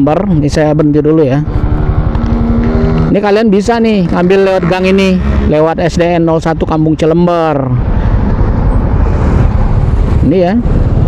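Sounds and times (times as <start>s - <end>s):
motorcycle engine rumble: 0.0s - 11.0s
wind noise on microphone: 0.0s - 11.0s.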